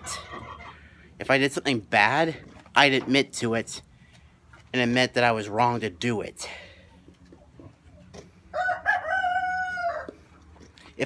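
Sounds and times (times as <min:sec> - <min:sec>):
rooster crowing: 0:08.5 - 0:10.2.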